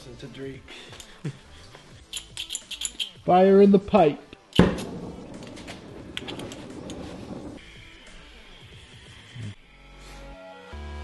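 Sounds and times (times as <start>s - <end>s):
background music: 0.0s - 11.0s
gas torch flame hissing: 4.8s - 7.6s.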